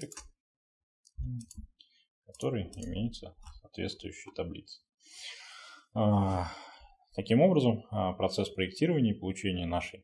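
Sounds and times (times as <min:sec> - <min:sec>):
man breathing in: 0:05.0 - 0:07.0.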